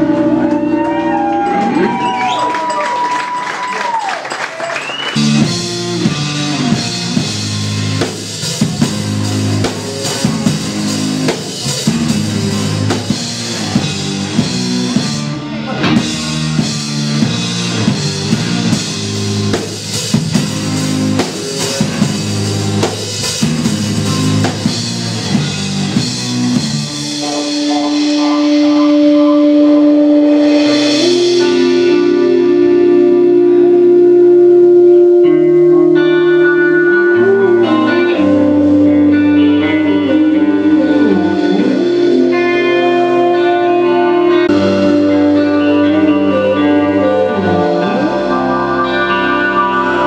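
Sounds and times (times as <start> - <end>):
rock guitar riff: 0.0 - 2.2, 5.1 - 50.0
bass line: 0.0 - 3.0, 5.0 - 50.0
drum kit: 4.6 - 49.0
sustained synthesizer notes: 23.4 - 50.0.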